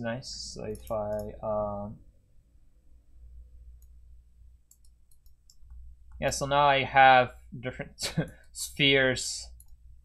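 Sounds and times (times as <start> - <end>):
low steady hum: 0.0 - 10.0
computer mouse clicks: 0.6 - 1.4, 4.7 - 6.3, 9.5 - 9.8.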